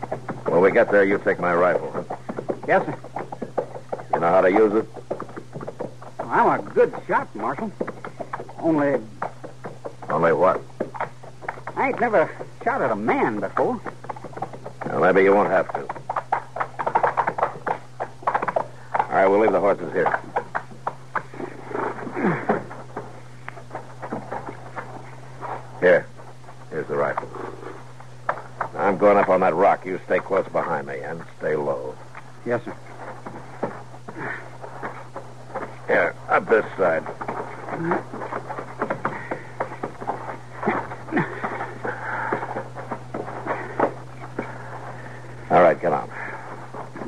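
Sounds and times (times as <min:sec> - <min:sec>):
hooves and footsteps clicking: 0:00.0 - 0:47.0
low recording hum: 0:00.0 - 0:47.0.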